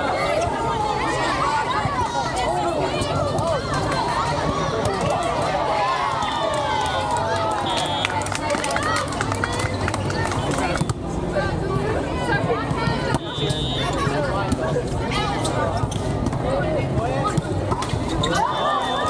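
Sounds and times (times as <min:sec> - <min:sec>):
many voices talking and calling: 0:00.0 - 0:19.0.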